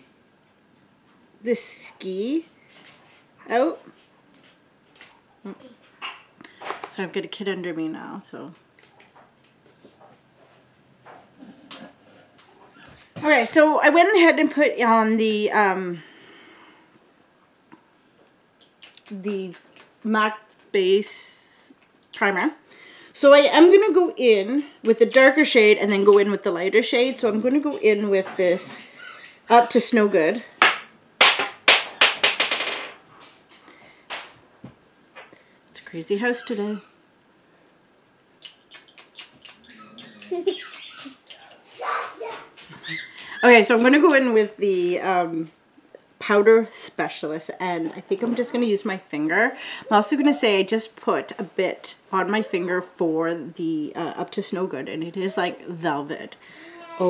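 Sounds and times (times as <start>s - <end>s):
woman speaking: 1.4s - 2.5s, 3.5s - 3.9s, 6.9s - 8.6s, 13.2s - 16.0s, 19.1s - 22.6s, 23.2s - 28.9s, 29.5s - 30.5s, 35.7s - 36.9s, 43.3s - 45.6s, 46.2s - 57.0s
pet animal sound: 28.6s - 29.6s, 38.4s - 43.6s.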